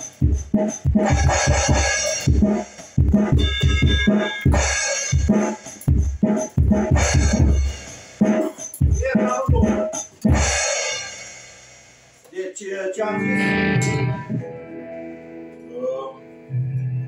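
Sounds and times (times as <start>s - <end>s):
heavy bass drum hits: 0.2s - 7.9s, 8.8s - 10.8s.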